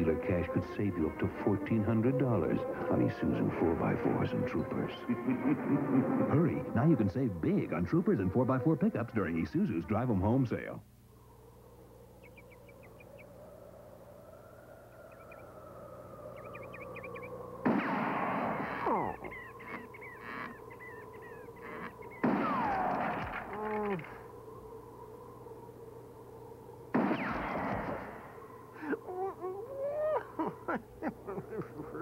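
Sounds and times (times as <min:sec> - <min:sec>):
birds chirping: 0:00.0 - 0:32.0.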